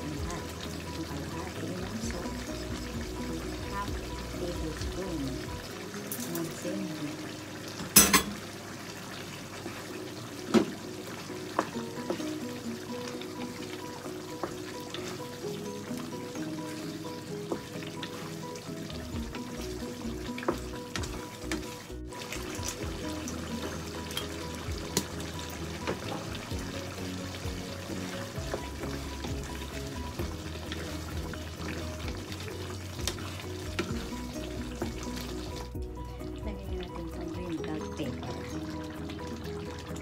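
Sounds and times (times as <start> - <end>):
background music: 0.0 - 8.4, 9.0 - 40.0
stew simmering in a pan: 0.0 - 40.0
wooden spatula stirring: 13.4 - 35.8.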